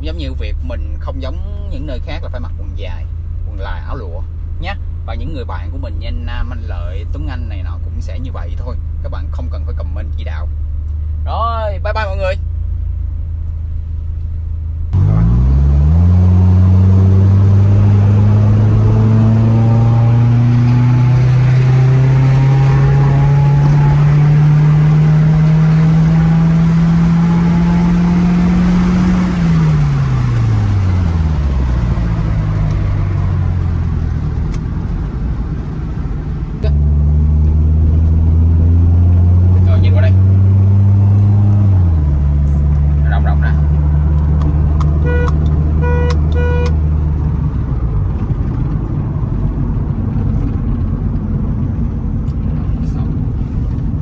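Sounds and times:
car engine revving: 0:00.0 - 0:54.0.

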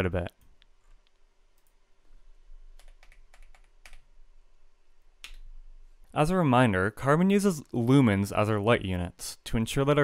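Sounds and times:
keystrokes on computer keyboard: 0:02.8 - 0:04.1.

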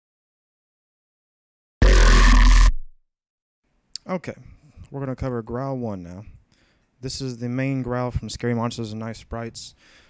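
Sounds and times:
growl bass synth burst: 0:01.8 - 0:02.9.

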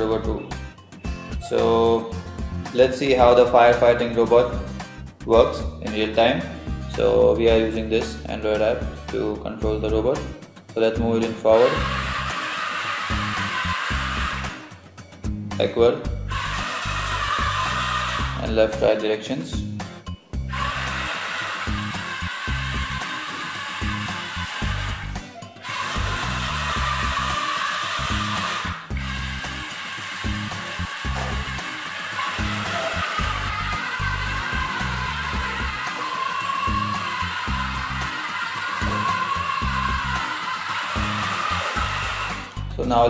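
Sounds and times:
background music: 0:00.0 - 0:43.0.

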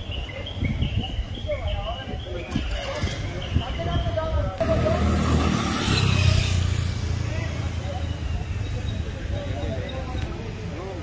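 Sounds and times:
voices: 0:00.0 - 0:11.0
motor scooter passing by: 0:04.6 - 0:07.8.

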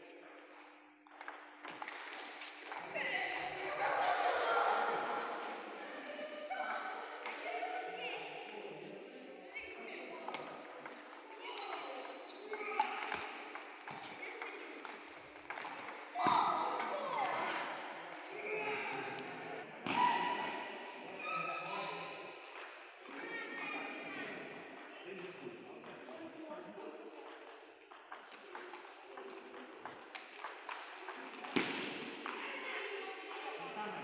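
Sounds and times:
table tennis balls clicking: 0:01.1 - 0:02.7, 0:12.8 - 0:17.4.

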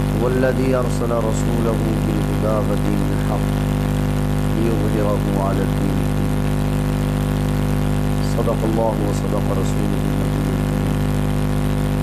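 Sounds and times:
loud electrical hum: 0:00.0 - 0:12.0.

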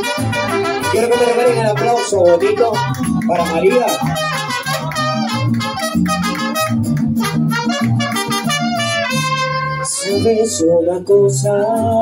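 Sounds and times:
trumpet melody: 0:00.0 - 0:10.9
pulsing bass guitar notes: 0:00.0 - 0:12.0
strummed guitars: 0:00.0 - 0:12.0.

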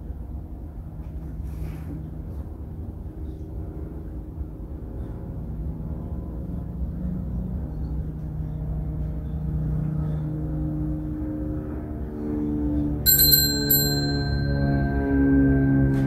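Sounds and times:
small altar bell ringing: 0:13.1 - 0:15.7.

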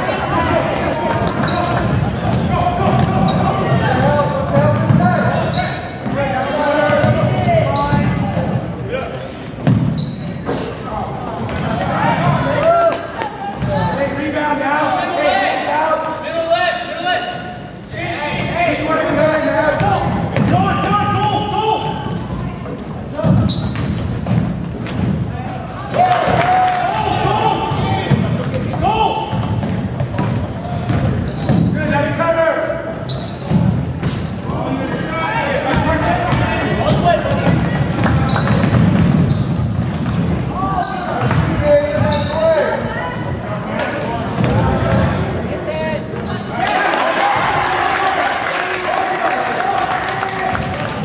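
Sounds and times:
sneakers squeaking: 0:00.0 - 0:46.9, 0:48.5 - 0:51.0
basketball bouncing on hardwood: 0:04.5 - 0:05.1, 0:29.3 - 0:31.8, 0:35.7 - 0:40.4, 0:41.2 - 0:42.1.

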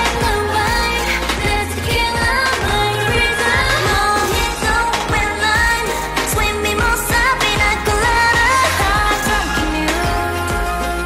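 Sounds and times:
female group singing pop song: 0:00.0 - 0:11.0.

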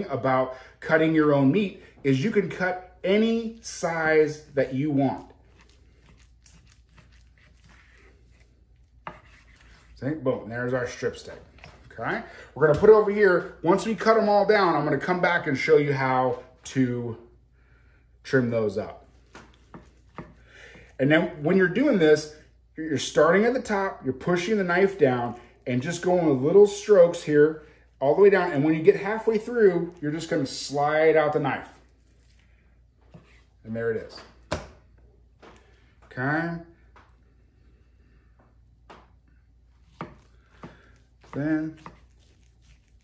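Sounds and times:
knife cutting through raw beef: 0:04.4 - 0:10.0, 0:39.8 - 0:43.0.

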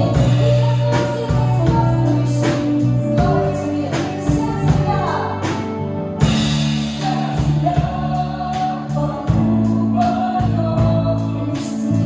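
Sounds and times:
drum kit with cymbal strokes: 0:00.0 - 0:12.0
electric guitar: 0:00.0 - 0:12.0
keyboards: 0:00.0 - 0:12.0
woman singing lead vocals: 0:00.0 - 0:12.0.

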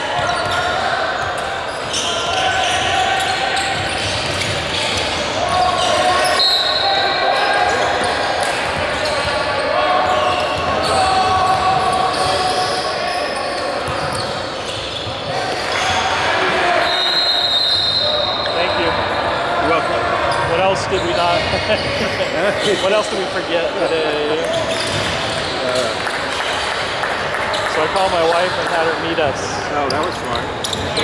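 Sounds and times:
indistinct chatter in a hall: 0:00.0 - 0:31.0.

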